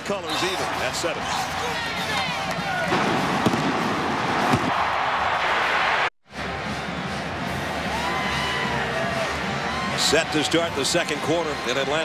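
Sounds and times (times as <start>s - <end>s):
stadium crowd cheering: 0.0s - 12.0s
music playing: 6.3s - 12.0s.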